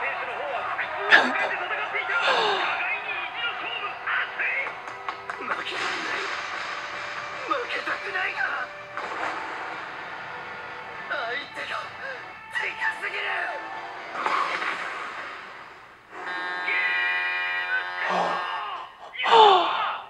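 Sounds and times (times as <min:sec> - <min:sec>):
steady background music: 0:00.0 - 0:18.8.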